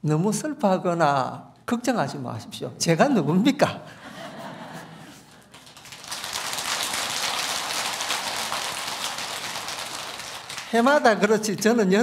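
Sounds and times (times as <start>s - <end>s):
audience applauding: 5.4s - 11.2s.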